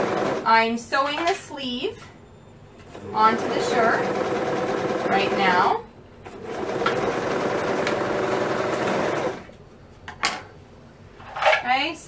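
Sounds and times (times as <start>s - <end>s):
serger stitching: 0.0s - 0.4s, 2.9s - 5.7s, 6.3s - 9.5s.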